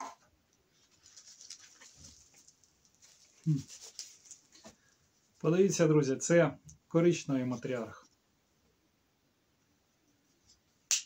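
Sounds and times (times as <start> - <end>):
cardboard rustling and scraping: 0.8 - 4.9.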